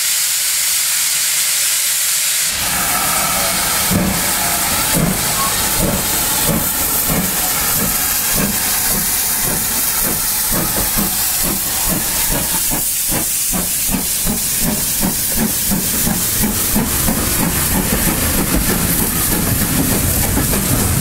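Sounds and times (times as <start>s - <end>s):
steam locomotive chuffing: 0.1s - 21.0s.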